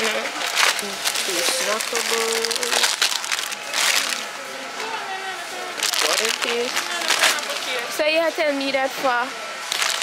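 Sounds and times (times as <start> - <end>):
foil bags crinkling: 0.4 - 4.3, 5.8 - 7.8, 9.7 - 10.0.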